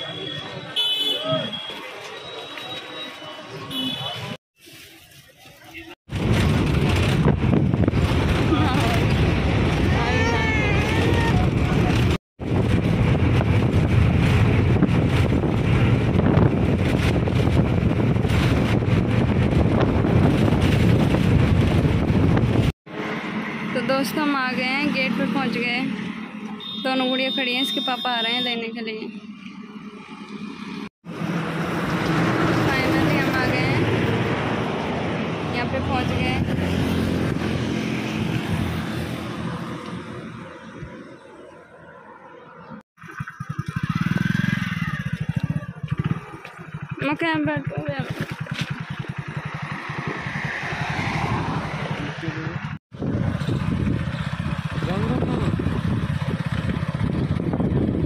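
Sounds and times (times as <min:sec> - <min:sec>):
bus engine and road rumble: 0:01.4 - 0:26.6, 0:28.9 - 0:58.0
wind buffeting microphone: 0:06.1 - 0:22.8, 0:47.6 - 0:58.0
vehicle passing by: 0:29.3 - 0:41.3, 0:48.1 - 0:57.7.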